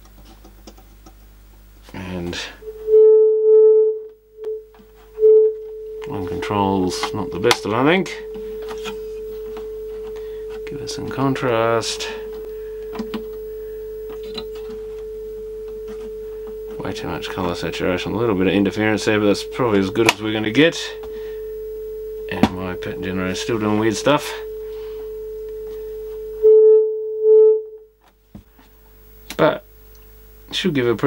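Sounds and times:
steady test tone: 0:02.0 - 0:28.0.

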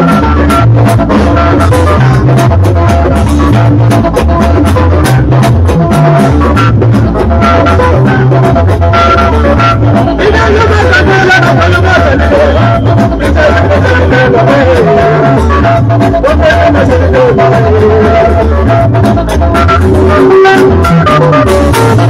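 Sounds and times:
deep bass line: 0:00.0 - 0:22.0
drumming: 0:00.0 - 0:22.0
guitar: 0:00.0 - 0:22.0
live band music over pa system: 0:00.0 - 0:22.0.

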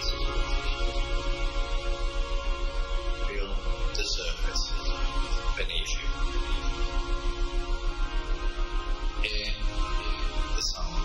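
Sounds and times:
ambient meditation music: 0:00.0 - 0:11.0.

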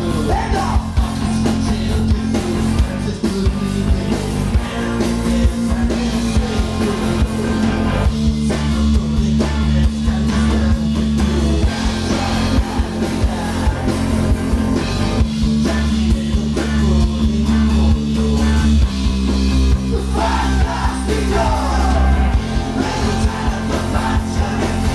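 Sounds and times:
drum kit beat: 0:00.0 - 0:24.9
electric bass: 0:00.0 - 0:24.9
electric guitars: 0:00.0 - 0:24.9.

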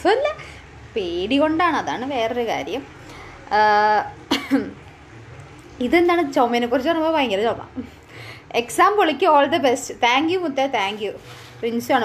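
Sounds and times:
woman talking: 0:00.0 - 0:04.8, 0:05.8 - 0:12.0
woman coughing: 0:04.3 - 0:04.8.

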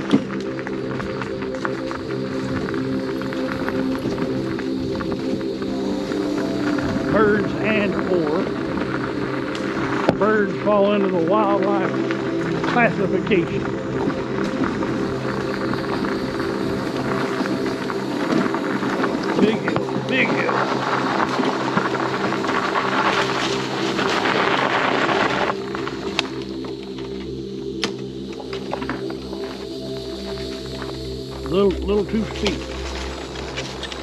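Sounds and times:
scooter motor hum: 0:00.0 - 0:31.4
tyres crunching on gravel: 0:00.0 - 0:34.0.

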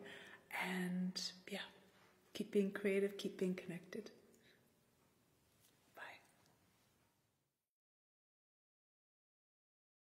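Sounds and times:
soft breathy vocal sound: 0:00.0 - 0:00.6.

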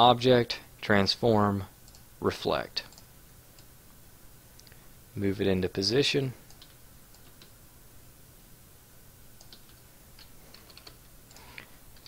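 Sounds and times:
computer keyboard and mouse clicking: 0:06.5 - 0:07.6, 0:09.4 - 0:12.0.

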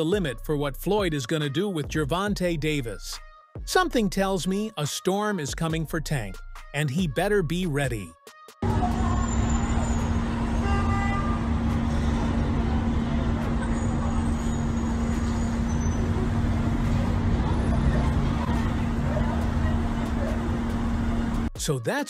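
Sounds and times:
city street traffic: 0:08.6 - 0:21.6
steady low hum: 0:08.6 - 0:21.6.

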